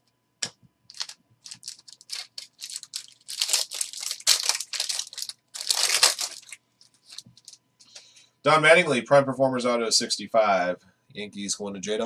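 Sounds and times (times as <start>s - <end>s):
foil wrapper crinkling and tearing: 0.9s - 7.6s.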